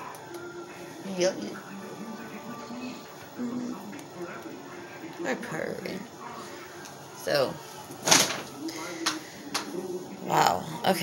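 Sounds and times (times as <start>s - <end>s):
faint television in background: 0.0s - 11.0s.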